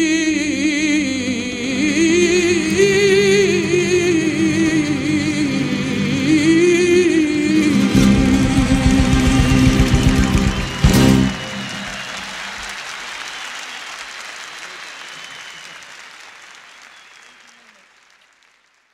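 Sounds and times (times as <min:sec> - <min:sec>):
live band playing: 0:07.4 - 0:12.8
audience applause: 0:07.6 - 0:18.9.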